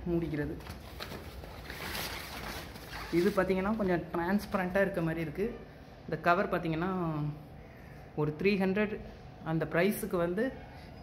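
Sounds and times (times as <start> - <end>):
thin plastic rustling and crinkling: 0.5 - 4.0.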